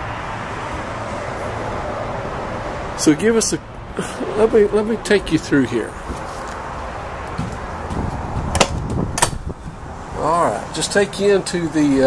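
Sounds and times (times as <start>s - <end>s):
low rumbling movement noise: 5.9s - 10.2s
footsteps on trailer floor: 6.0s - 9.0s
sharp knocks: 7.3s - 9.5s.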